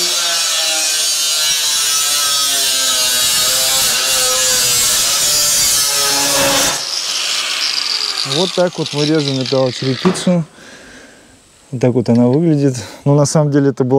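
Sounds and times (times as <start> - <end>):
angle grinder cutting metal: 0.0 - 10.5.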